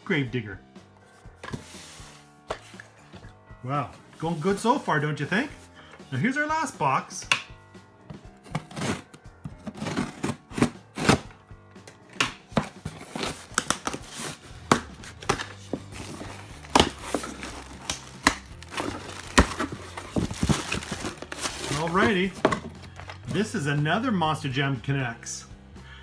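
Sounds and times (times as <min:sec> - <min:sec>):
background music: 0:00.0 - 0:26.0
cardboard tearing: 0:08.5 - 0:11.3, 0:12.8 - 0:22.5
plastic bag crinkling: 0:16.1 - 0:22.4.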